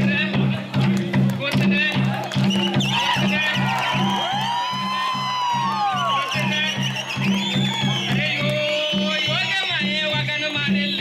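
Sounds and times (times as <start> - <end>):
high rising and falling calls: 2.5 - 9.5.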